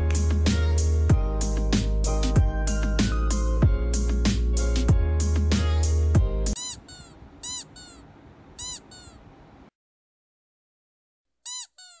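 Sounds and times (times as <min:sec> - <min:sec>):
music: 0:00.0 - 0:06.6
high meow-like calls: 0:06.6 - 0:09.2.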